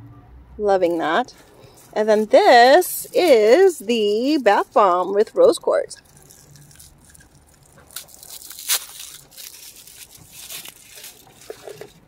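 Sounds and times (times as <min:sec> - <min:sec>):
packaging rustling and crinkling: 0:00.9 - 0:05.2, 0:06.0 - 0:12.0.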